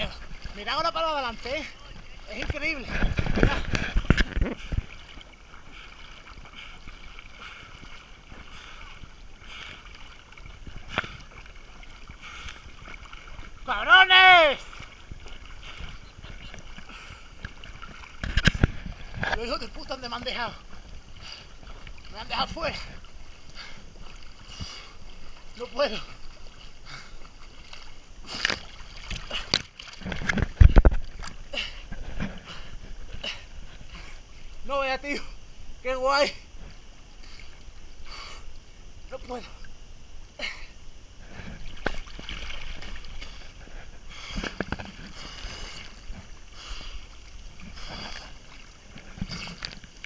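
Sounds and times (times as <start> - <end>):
water sloshing and splashing: 0.0 - 40.1, 40.7 - 50.0.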